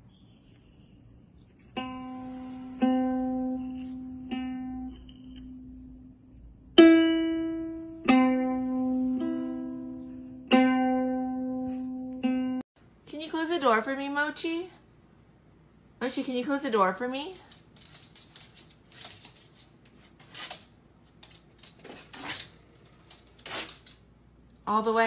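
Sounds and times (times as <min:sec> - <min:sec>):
ukulele strings plucked: 0:06.8 - 0:12.6.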